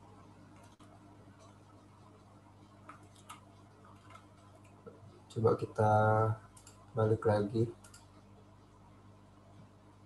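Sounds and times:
faint low hum: 0.0s - 10.0s
computer mouse clicks: 0.5s - 1.6s, 2.6s - 5.0s, 6.5s - 6.9s, 7.8s - 8.2s.

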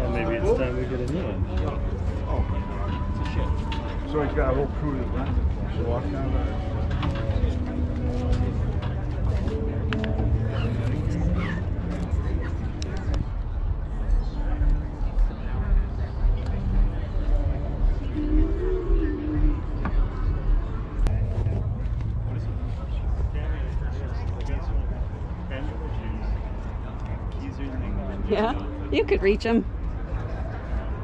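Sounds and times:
people talking: 0.0s - 26.5s, 27.1s - 29.7s
steady low rumble: 0.0s - 31.0s.

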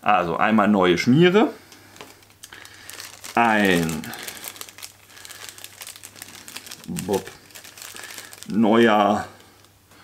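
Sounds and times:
plastic bag crinkling: 1.9s - 9.8s.

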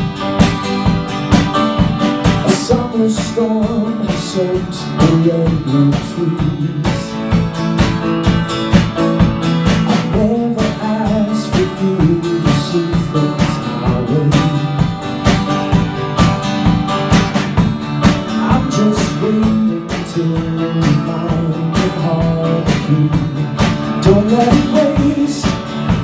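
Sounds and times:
acoustic guitar strumming: 0.0s - 26.0s
drum kit beat: 0.0s - 26.0s.

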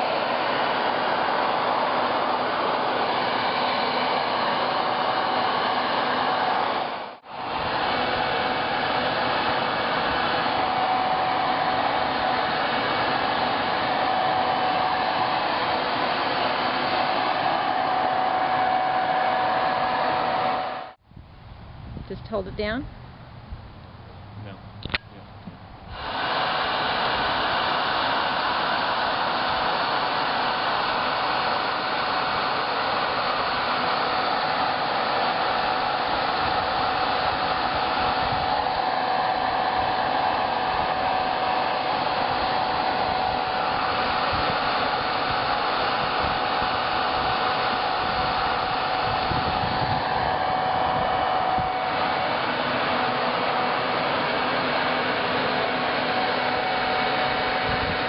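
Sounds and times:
blower rushing air with whine: 0.0s - 58.0s.

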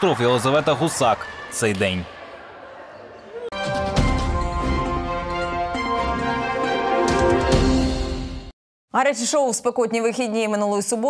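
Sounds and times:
sports hall background: 0.0s - 7.8s
news theme music: 3.6s - 8.5s.

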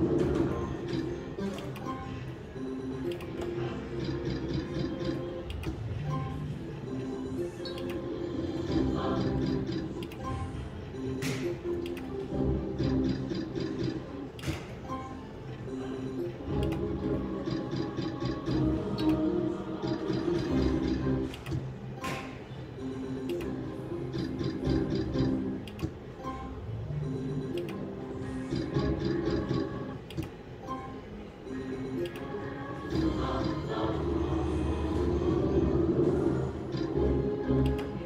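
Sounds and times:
slot machine game music: 0.0s - 38.0s.

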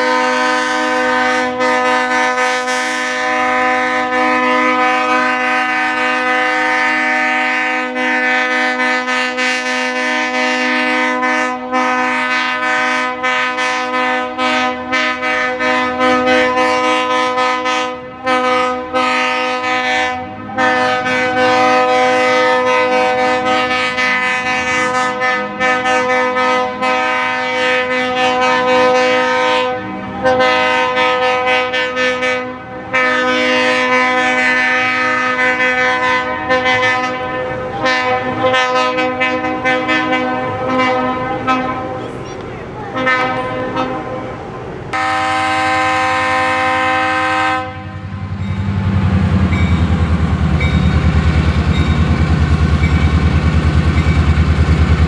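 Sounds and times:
locomotive air horn blast: 0.0s - 53.1s.

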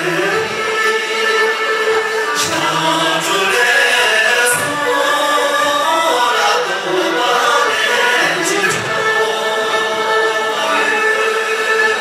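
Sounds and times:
group singing folk song: 0.0s - 12.0s
musical accompaniment: 0.0s - 12.0s.

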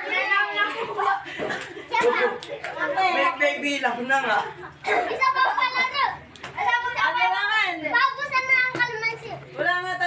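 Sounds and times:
children laughing and calling out: 0.0s - 3.4s, 4.6s - 9.5s.

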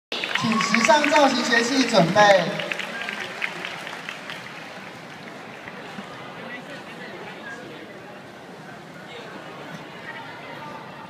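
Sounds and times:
faint audience murmur: 1.4s - 11.0s.

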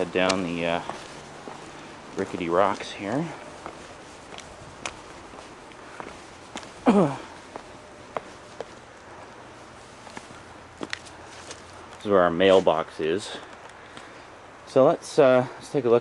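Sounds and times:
footsteps on stone steps: 0.0s - 12.0s.

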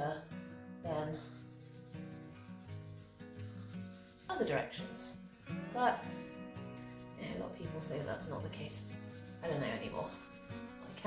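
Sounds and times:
background music with held chords: 0.0s - 10.9s
pastel rubbing on paper: 1.1s - 11.0s.

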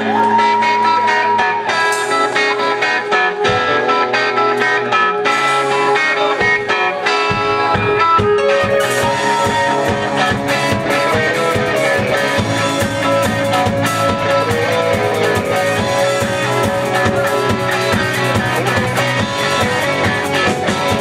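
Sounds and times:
drums and cymbals: 0.0s - 21.0s
electric guitars: 0.0s - 21.0s.

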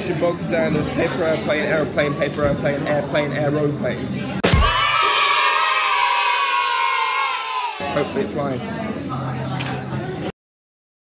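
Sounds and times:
metallic cymbal-like crash: 4.4s - 6.6s.

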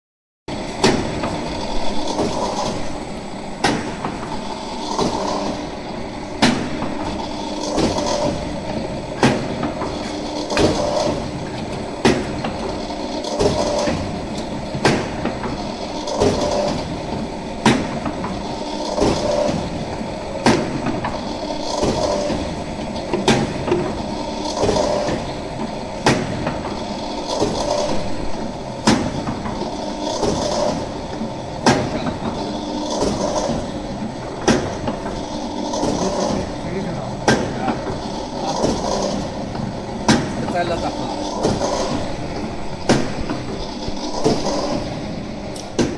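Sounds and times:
press machine humming: 0.5s - 45.9s.

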